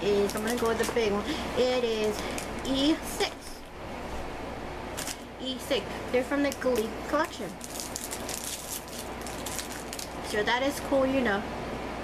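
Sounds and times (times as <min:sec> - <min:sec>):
rustling and crackling of handled objects: 0:00.0 - 0:04.3, 0:04.9 - 0:10.9
faint low steady hum: 0:00.0 - 0:12.0.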